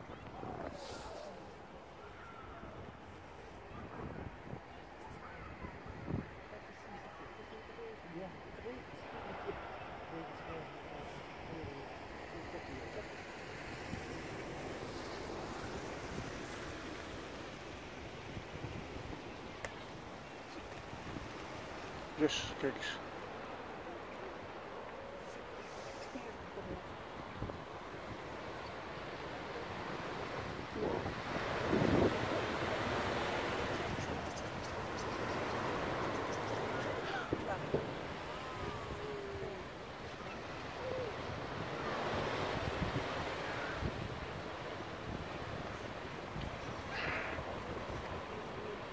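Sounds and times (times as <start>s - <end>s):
starling flock rushing overhead: 46.6s - 47.5s.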